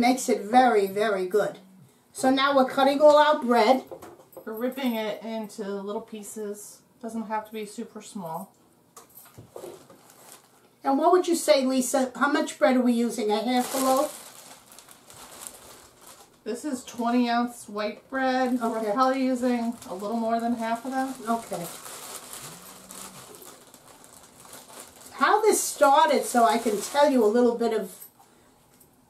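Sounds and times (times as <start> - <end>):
woman speaking: 0.0 - 1.6, 2.2 - 8.6, 10.8 - 14.2, 16.5 - 21.8, 25.1 - 28.0
plastic bag crinkling: 9.2 - 10.7, 13.0 - 28.1.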